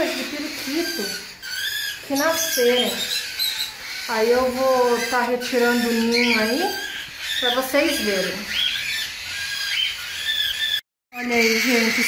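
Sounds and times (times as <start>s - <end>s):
budgerigars squeaky calls: 0.0s - 12.0s.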